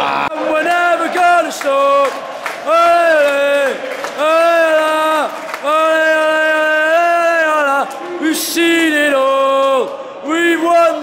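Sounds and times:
crowd chanting: 0:00.0 - 0:09.4.

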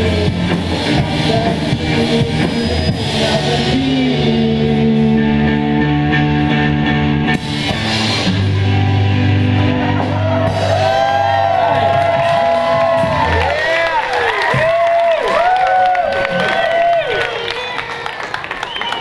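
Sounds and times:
rock band sustained chords: 0:00.0 - 0:14.0
high voices whooping and cheering: 0:10.0 - 0:19.0.

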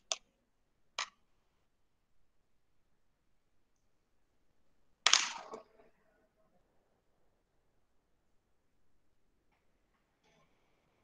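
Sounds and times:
sharp crack: 0:05.0 - 0:05.9.

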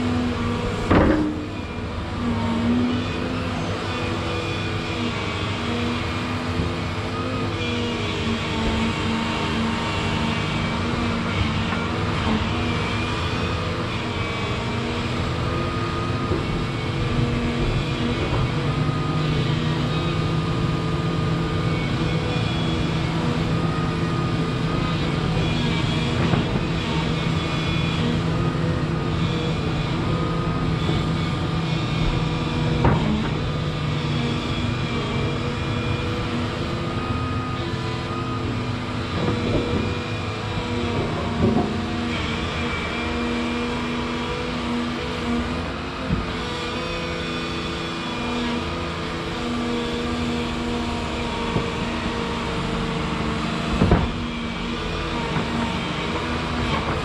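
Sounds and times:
excavator diesel engine under load: 0:00.0 - 0:57.0.

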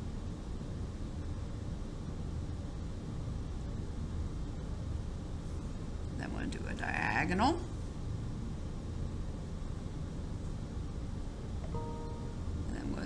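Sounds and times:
low hum and hiss: 0:00.0 - 0:13.0.

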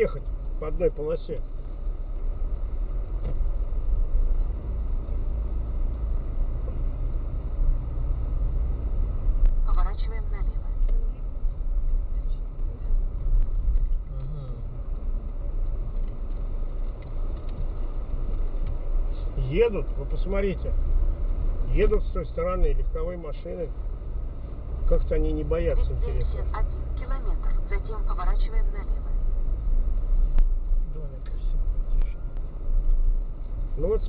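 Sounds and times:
car engine and tyres rumbling: 0:00.0 - 0:34.0.

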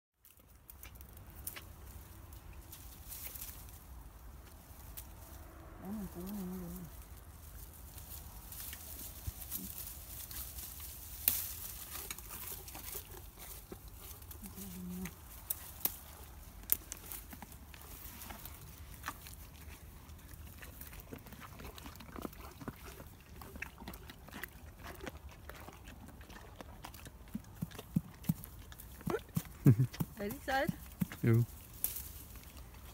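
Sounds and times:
leaves and twigs rustling: 0:00.2 - 0:23.6, 0:28.3 - 0:32.9.

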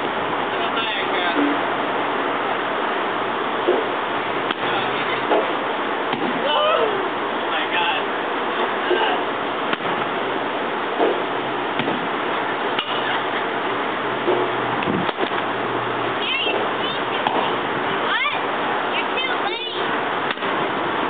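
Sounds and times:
noisy background: 0:00.0 - 0:21.0.

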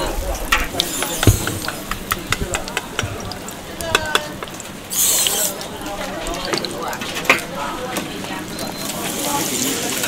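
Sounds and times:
oil sizzling in a wok: 0:00.0 - 0:10.0
loud burst of sizzling: 0:00.6 - 0:02.2, 0:04.6 - 0:05.9, 0:08.9 - 0:10.0.

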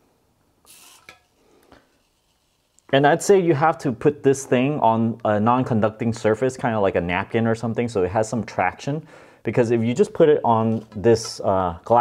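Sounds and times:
faint scrape: 0:00.7 - 0:03.0.

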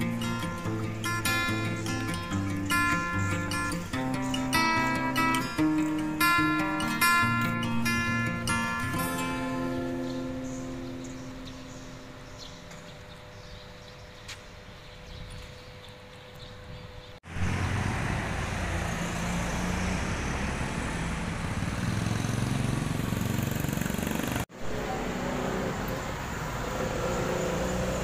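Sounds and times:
car engines passing: 0:00.0 - 0:12.3, 0:17.2 - 0:28.0
motorbike engines passing: 0:00.0 - 0:12.9, 0:17.2 - 0:28.0.

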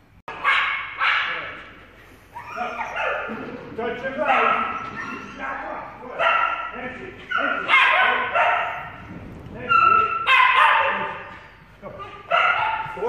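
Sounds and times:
small dog barking and yipping: 0:02.4 - 0:03.3, 0:07.3 - 0:08.8, 0:09.7 - 0:11.4, 0:12.0 - 0:13.0.

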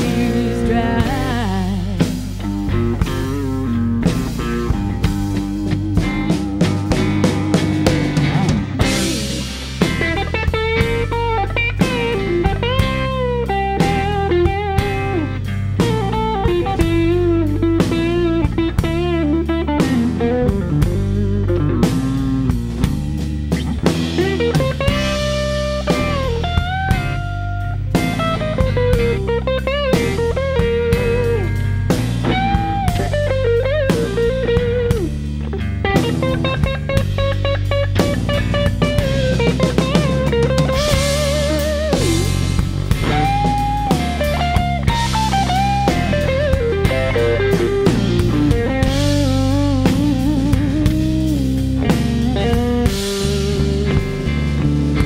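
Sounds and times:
blues-rock band playing: 0:00.0 - 0:55.0
electric guitar solo: 0:00.0 - 0:55.0.

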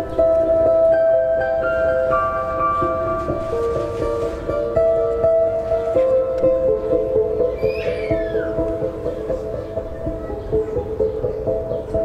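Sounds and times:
high squeal falling in pitch: 0:07.5 - 0:08.6.

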